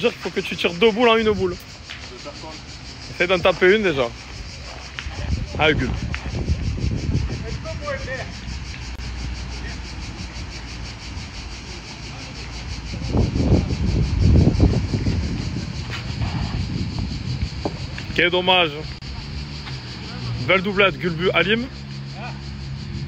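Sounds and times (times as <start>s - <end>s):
traffic or wind rumble: 0.0s - 23.0s.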